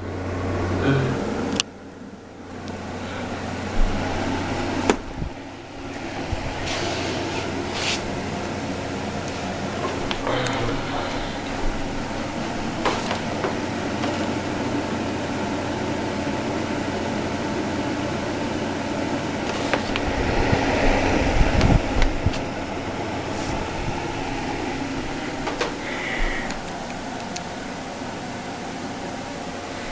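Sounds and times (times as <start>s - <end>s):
humidifier fan running: 0.0s - 29.9s
clicks and low thumps: 3.7s - 5.4s.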